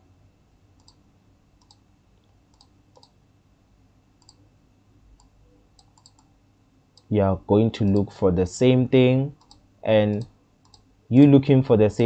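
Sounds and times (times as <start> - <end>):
low room hiss: 0.0 - 12.0
computer mouse clicks: 0.8 - 1.0, 1.6 - 3.2, 4.2 - 4.4, 5.2 - 6.3, 7.8 - 8.1, 9.4 - 10.9.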